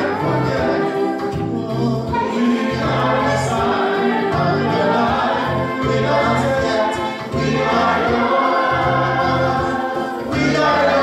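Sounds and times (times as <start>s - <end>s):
bass line: 0.0s - 11.0s
choir singing church music: 0.0s - 11.0s.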